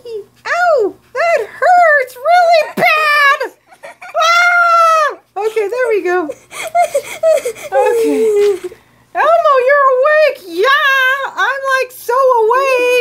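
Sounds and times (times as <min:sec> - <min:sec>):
person making high squeals: 0:06.7 - 0:08.8.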